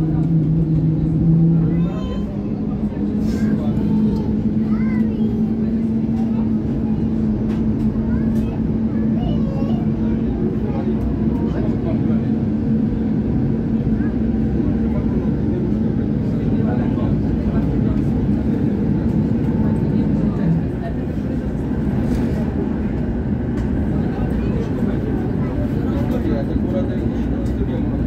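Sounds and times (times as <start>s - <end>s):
constant hum: 0.0s - 28.0s
tram wheels rumbling on rails: 0.0s - 28.0s.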